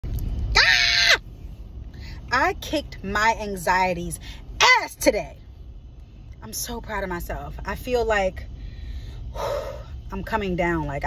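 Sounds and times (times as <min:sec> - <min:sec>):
low rumble inside a car: 0:00.0 - 0:11.0.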